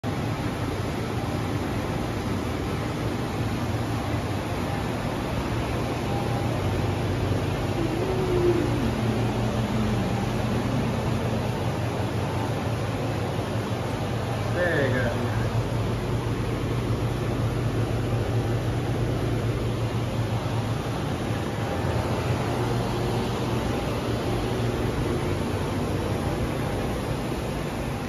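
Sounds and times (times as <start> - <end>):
chillers and fans droning: 0.0 - 28.0
low hum: 2.2 - 28.0.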